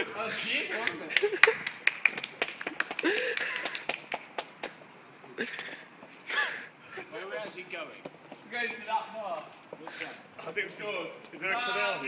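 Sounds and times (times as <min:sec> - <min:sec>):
men's voices: 0:00.0 - 0:01.5, 0:05.2 - 0:12.0.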